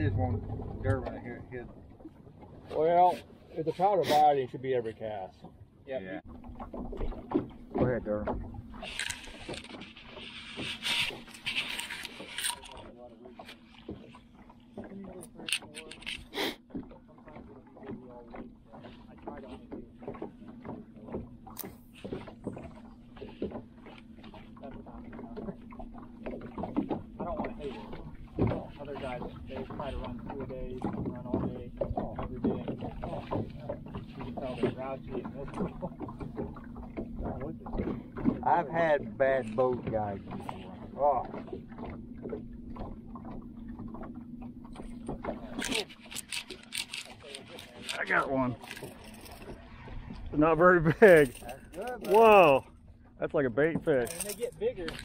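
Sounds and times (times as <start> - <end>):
people talking: 0.0 - 1.7, 2.7 - 6.2, 7.8 - 8.3, 14.9 - 16.2, 27.2 - 36.0, 38.4 - 41.4, 45.4 - 45.9, 47.2 - 48.6, 50.4 - 52.6, 53.2 - 55.0
reel clicking: 8.8 - 13.6, 15.3 - 16.3, 45.4 - 49.6.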